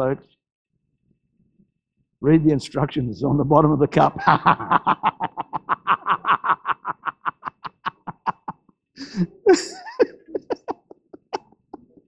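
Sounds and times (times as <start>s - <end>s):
man laughing: 4.1s - 11.7s.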